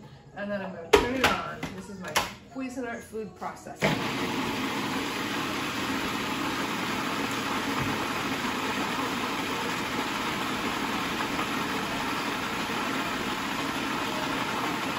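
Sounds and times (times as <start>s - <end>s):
food processor running: 3.8s - 14.9s.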